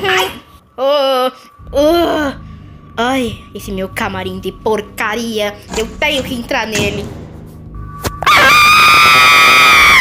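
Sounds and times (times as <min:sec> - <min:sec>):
cartoon character screaming: 0:08.3 - 0:10.0.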